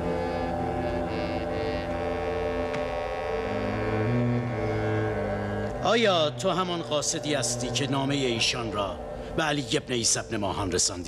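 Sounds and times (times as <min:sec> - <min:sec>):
film score low droning notes: 0:00.0 - 0:11.0.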